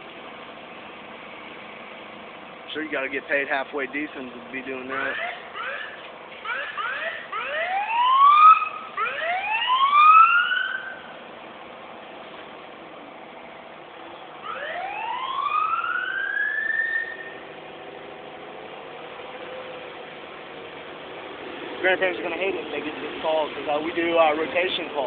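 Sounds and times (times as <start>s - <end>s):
siren rising whoops: 5.0s - 11.1s, 14.4s - 17.4s.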